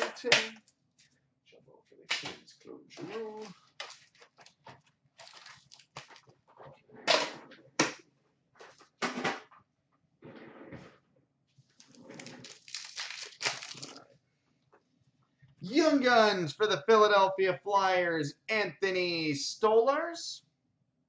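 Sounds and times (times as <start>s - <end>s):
wrappers ripping: 3.4s - 4.6s, 5.2s - 6.3s, 11.8s - 14.0s
wrappers crinkling: 3.4s - 6.4s, 11.7s - 14.0s.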